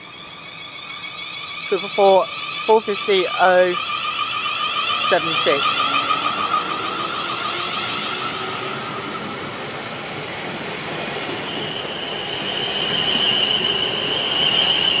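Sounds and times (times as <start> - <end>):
electric train running past: 0.0 - 15.0
high-pitched whine: 0.0 - 15.0
traction equipment whining: 0.0 - 15.0.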